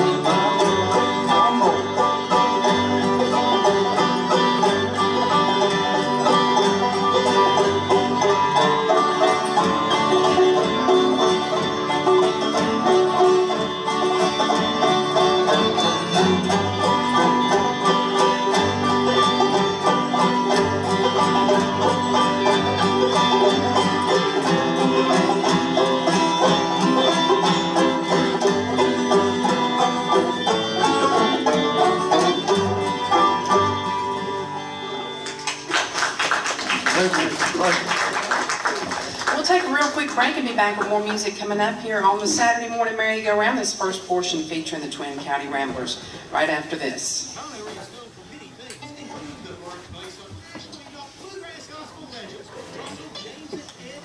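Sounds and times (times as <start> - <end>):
bluegrass string band playing: 0.0 - 48.1
audience applause: 35.1 - 40.4.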